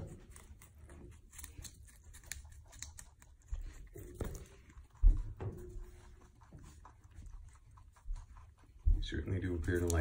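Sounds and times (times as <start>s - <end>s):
animals chewing cucumber: 0.0s - 10.0s.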